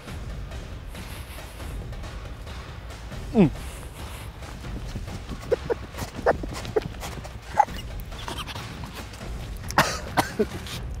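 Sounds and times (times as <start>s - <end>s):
man gasping and huffing: 3.2s - 8.8s.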